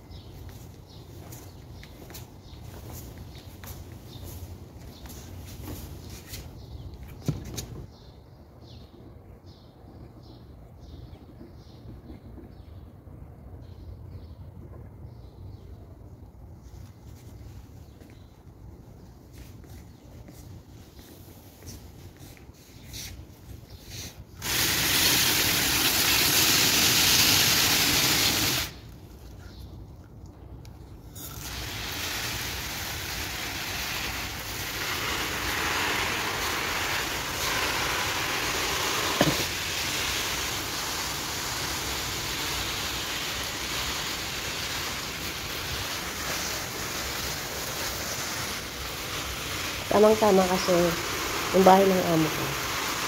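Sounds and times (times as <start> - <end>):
hose spraying water on leaves: 23.0 - 29.0, 31.1 - 53.0.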